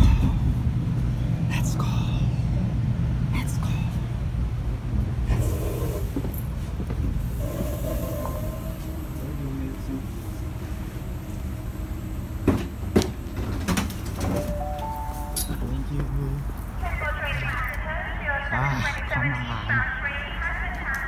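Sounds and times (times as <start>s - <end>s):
train coach interior rumble: 0.0s - 18.4s.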